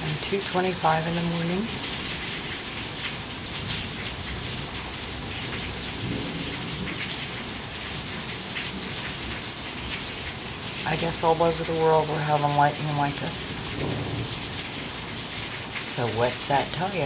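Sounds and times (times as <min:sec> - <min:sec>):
heavy rain falling: 0:00.0 - 0:17.0
water streaming off roof: 0:00.0 - 0:17.0.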